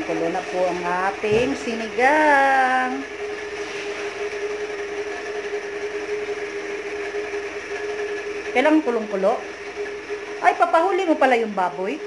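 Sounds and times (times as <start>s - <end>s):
constant humming tone: 0.0s - 12.0s
pot boiling with steady hiss: 0.0s - 12.0s.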